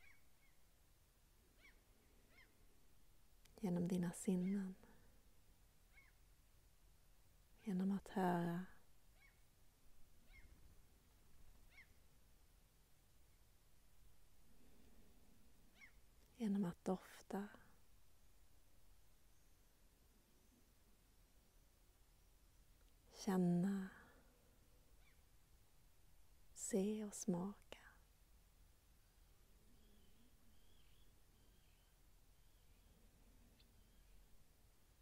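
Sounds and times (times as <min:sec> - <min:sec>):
faint bird calls: 0:00.0 - 0:00.6, 0:01.5 - 0:02.7, 0:05.9 - 0:06.3, 0:09.1 - 0:09.5, 0:10.2 - 0:10.7, 0:11.6 - 0:12.0, 0:15.6 - 0:16.1, 0:24.9 - 0:25.3, 0:29.0 - 0:34.5
faint outdoor ambience: 0:00.0 - 0:35.0.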